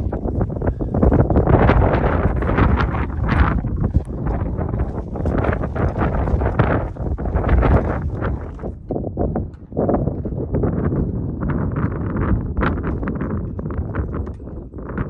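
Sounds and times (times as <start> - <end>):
strong wind buffeting microphone: 0.0 - 15.0.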